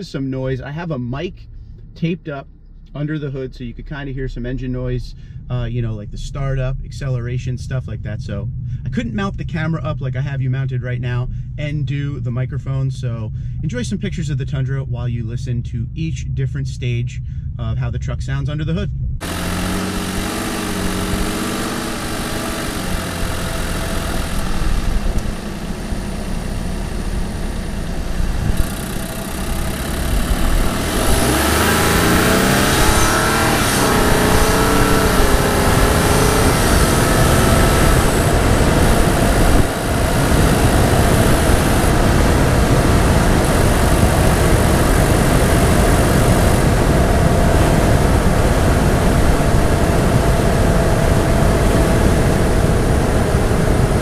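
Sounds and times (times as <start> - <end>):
truck engine accelerating: 19.0 - 54.0.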